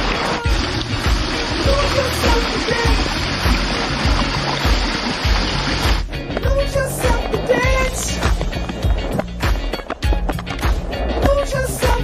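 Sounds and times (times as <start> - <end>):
dance music with sung melody: 0.0 - 12.0.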